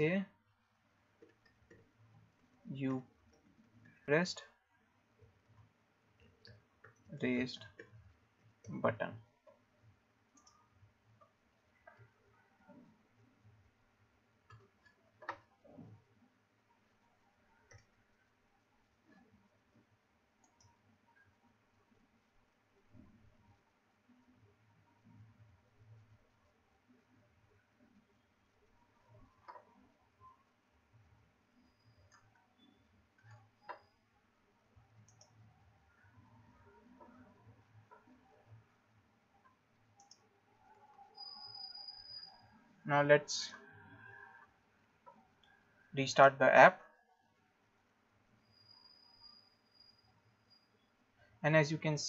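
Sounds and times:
keyboard and mouse clicks: 0:14.5 - 0:16.0, 0:29.4 - 0:29.8, 0:40.0 - 0:42.3.

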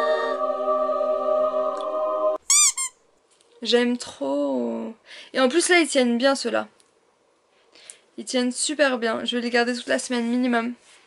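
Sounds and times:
high-pitched squeals: 0:02.5 - 0:03.0.

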